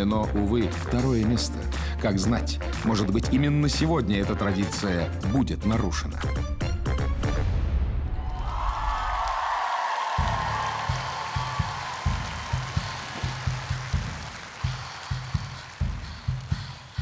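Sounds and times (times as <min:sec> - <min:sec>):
audience applauding and cheering: 0:08.1 - 0:17.0.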